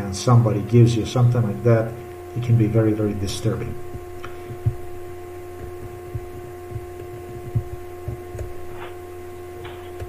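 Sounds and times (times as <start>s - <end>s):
electrical hum: 0.0s - 10.0s
soft low thumps: 1.2s - 10.0s
low rumble: 2.0s - 9.3s.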